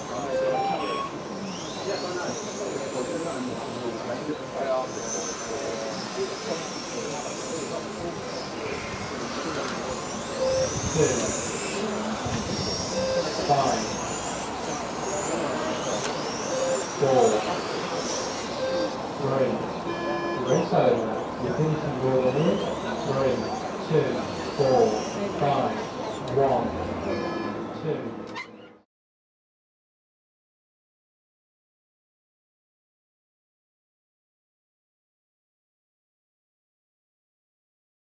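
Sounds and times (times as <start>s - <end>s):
electric motor whine: 0.0s - 27.8s
people talking: 0.0s - 28.3s.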